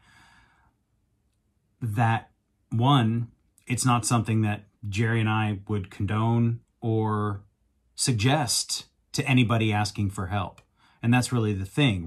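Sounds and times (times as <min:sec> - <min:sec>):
man's faint breath: 0:00.0 - 0:00.8
man speaking: 0:01.8 - 0:07.4, 0:08.0 - 0:12.0.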